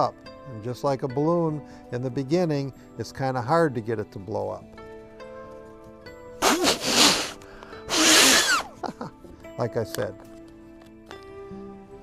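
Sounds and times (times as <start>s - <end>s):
puffs of breath into paper: 6.4s - 8.7s.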